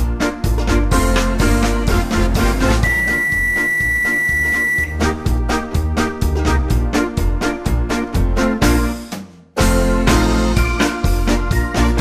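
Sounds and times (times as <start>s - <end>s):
background music: 0.0s - 12.0s
microwave oven beep: 2.8s - 5.0s.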